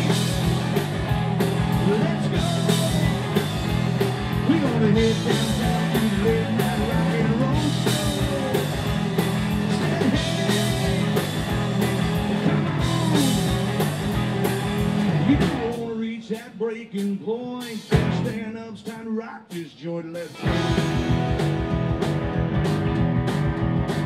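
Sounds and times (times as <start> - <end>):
bending electric guitar lines: 0.0 - 15.8, 20.4 - 24.0
choppy electric guitar riff: 0.0 - 16.7, 17.8 - 18.9, 20.1 - 24.0
rock band playing: 0.0 - 24.0.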